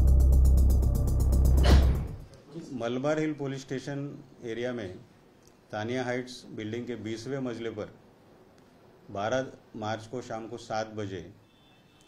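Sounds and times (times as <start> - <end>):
deep bass drone: 0.0 - 2.3.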